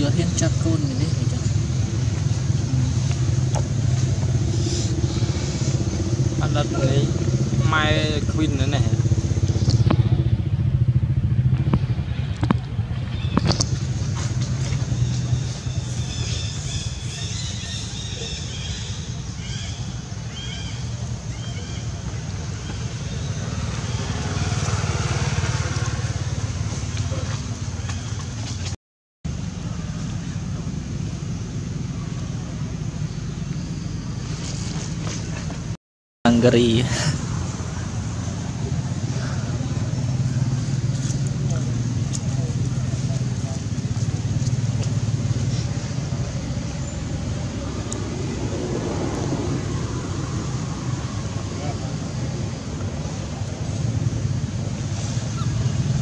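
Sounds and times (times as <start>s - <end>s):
vehicle engine running: 0.0s - 56.0s.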